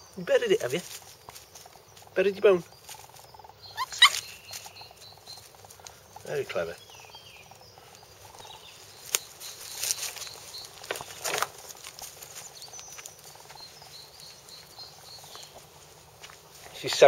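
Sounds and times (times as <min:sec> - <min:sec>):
scuffing on soil and leaves: 0:00.5 - 0:06.0, 0:07.9 - 0:17.0
sharp crunches: 0:09.0 - 0:13.6.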